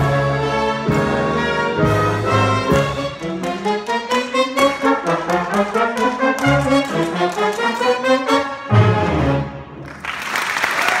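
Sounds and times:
audience applause: 0:09.8 - 0:11.0.

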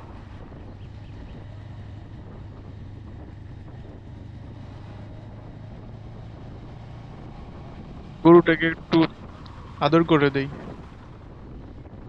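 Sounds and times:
road and wind noise: 0:00.0 - 0:12.0
motorcycle engine cruising: 0:00.3 - 0:11.9.

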